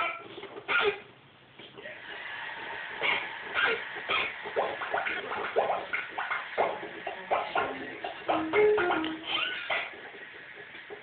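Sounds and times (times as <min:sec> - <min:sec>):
baby squealing and grunting: 0:09.1 - 0:10.0.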